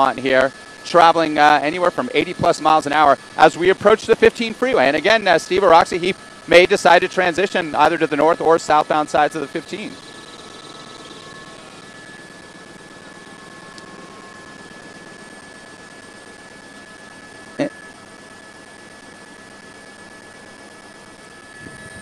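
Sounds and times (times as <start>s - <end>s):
thin steady tone: 0.0s - 22.0s.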